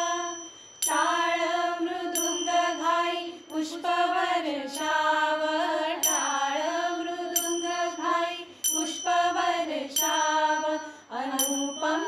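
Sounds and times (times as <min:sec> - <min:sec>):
hand cymbals struck: 0:00.0 - 0:03.8, 0:04.7 - 0:05.2, 0:06.0 - 0:12.0
women's chorus singing: 0:00.0 - 0:12.0.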